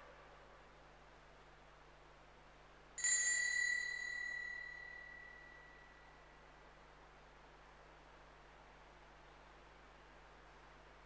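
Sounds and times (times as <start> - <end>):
small brass bell ringing: 3.0 - 6.2.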